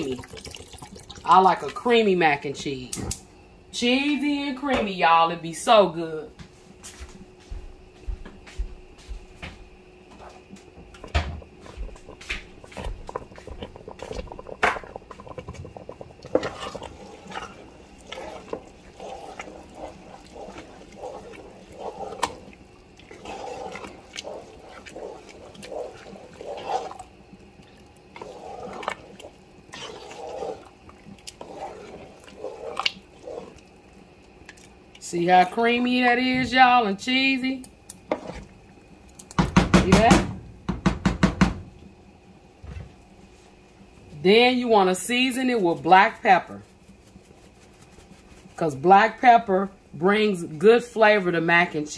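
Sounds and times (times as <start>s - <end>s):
spoon stirring macaroni in pot: 10.1s - 40.2s.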